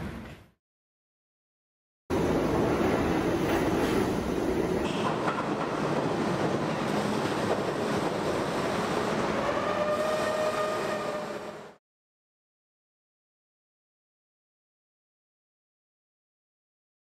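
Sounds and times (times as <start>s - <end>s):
subway train rumbling on rails: 2.1s - 11.8s.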